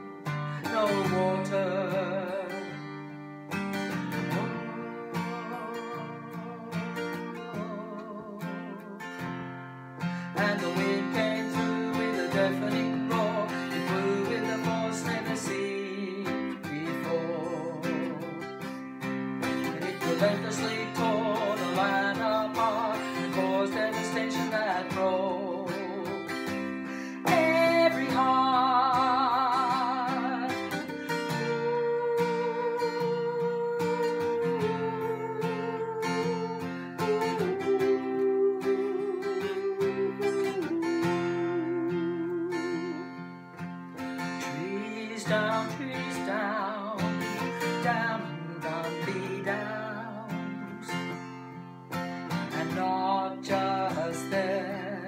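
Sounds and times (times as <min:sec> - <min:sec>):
strummed acoustic guitar: 0:00.0 - 0:55.0
woman singing country ballad: 0:00.0 - 0:55.0.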